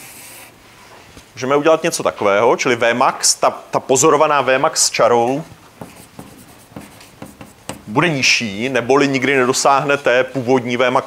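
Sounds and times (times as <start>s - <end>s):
chalk tapping and scratching on board: 5.7s - 8.1s.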